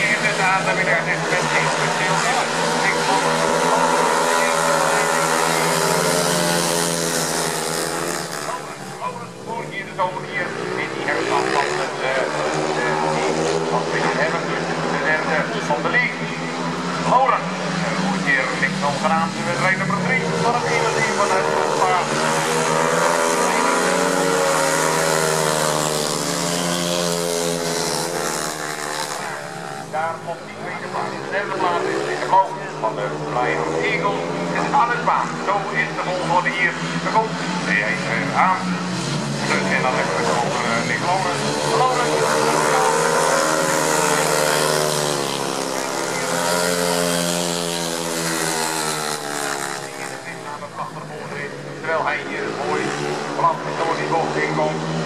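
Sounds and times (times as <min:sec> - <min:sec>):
motorcycle engine running hard: 0:00.0 - 0:55.0.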